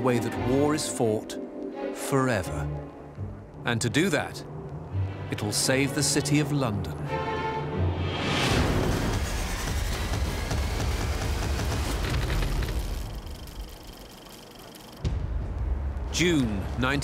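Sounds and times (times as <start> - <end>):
background music: 0.0 - 13.1, 15.0 - 17.0
low steady drone: 4.3 - 17.0.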